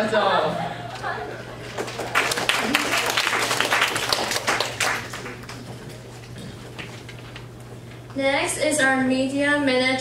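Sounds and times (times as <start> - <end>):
audience applause: 1.3 - 7.0.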